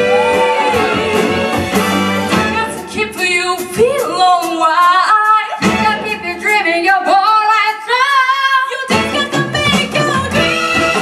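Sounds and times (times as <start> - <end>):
women singing soul: 0.0 - 1.7
live band with horns: 0.0 - 7.3, 8.4 - 11.0.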